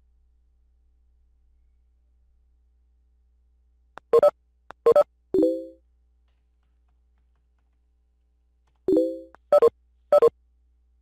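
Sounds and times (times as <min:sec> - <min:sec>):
short beeps: 0:08.9 - 0:10.3.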